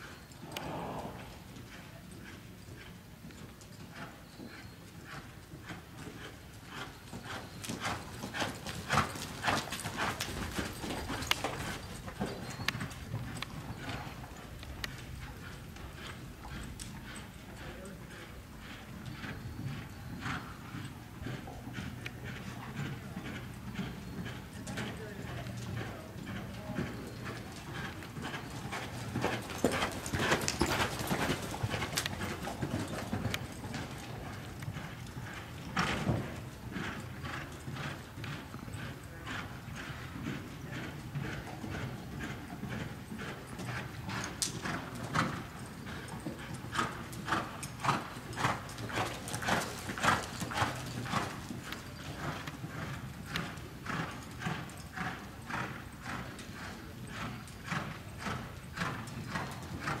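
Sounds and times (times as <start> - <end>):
horse hoofbeats on dirt: 0.1 - 60.0.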